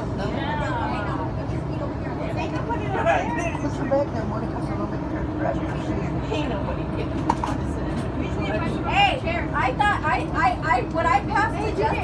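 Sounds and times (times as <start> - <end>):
people talking: 0.2 - 12.0.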